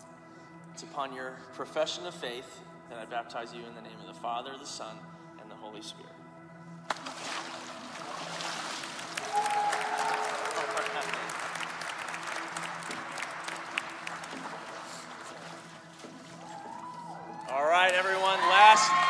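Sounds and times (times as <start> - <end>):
soft background music: 0.0 - 19.0
crowd applauding and cheering: 8.7 - 19.0.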